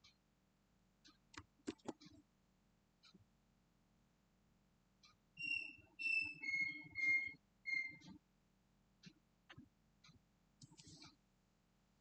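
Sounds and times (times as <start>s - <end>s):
whistled notes: 5.4s - 8.0s.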